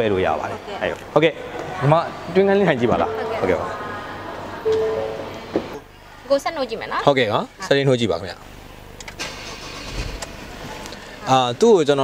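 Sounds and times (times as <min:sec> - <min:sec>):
diesel engine starting and idling: 0:09.0 - 0:10.6.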